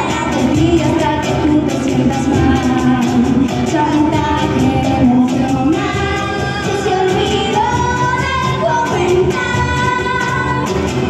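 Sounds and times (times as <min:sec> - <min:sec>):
acoustic guitar: 0:00.0 - 0:11.0
cajon: 0:00.0 - 0:11.0
people singing into microphones: 0:00.0 - 0:11.0.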